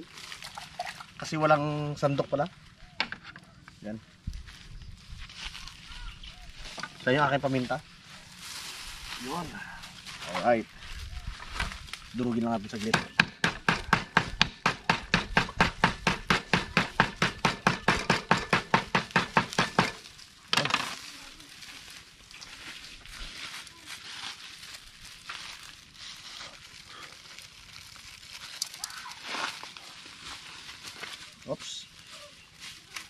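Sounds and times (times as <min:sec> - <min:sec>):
plastic bag rustling: 0:20.0 - 0:33.0.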